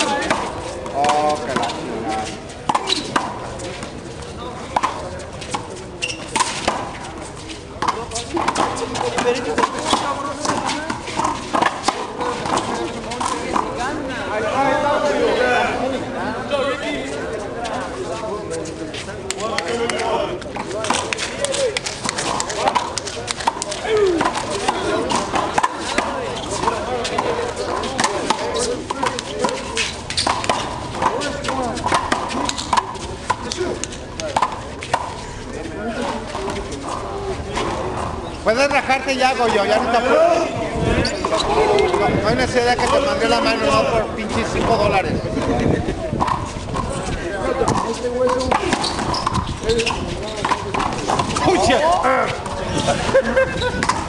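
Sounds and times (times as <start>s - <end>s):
voices talking: 0.0s - 54.0s
rubber handball slapping concrete: 27.9s - 35.1s.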